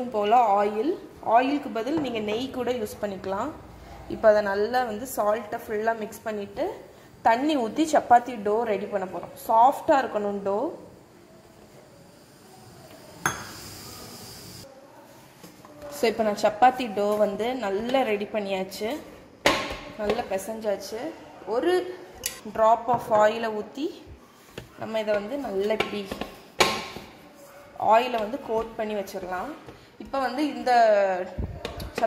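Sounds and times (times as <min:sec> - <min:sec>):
hiss: 0:12.0 - 0:14.6.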